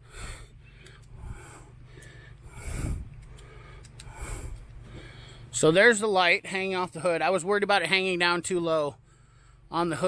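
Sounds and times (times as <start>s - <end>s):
short puffs of breath: 0.0s - 5.5s.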